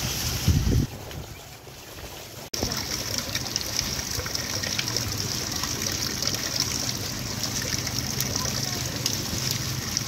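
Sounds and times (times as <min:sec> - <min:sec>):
wind buffeting microphone: 0:00.0 - 0:02.2
water splashing from water wheel: 0:00.0 - 0:10.0.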